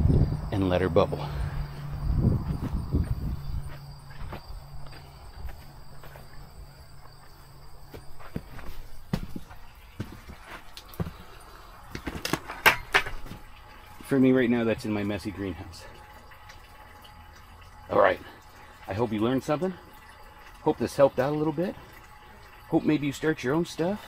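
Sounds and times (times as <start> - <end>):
footsteps on grass: 1.8 - 11.3.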